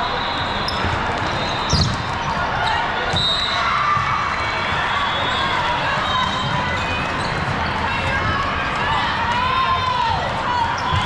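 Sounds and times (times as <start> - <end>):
many voices echoing in hall: 0.0 - 11.0.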